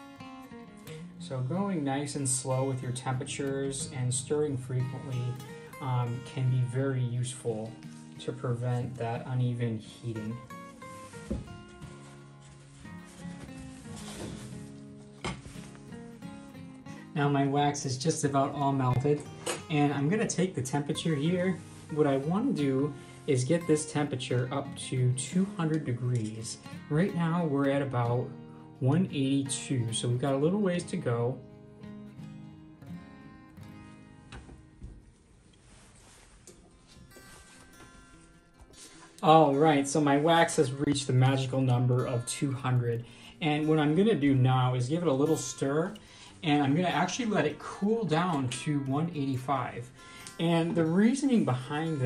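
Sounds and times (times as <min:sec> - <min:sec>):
plucked guitar music: 0:00.0 - 0:35.0, 0:35.6 - 0:52.0.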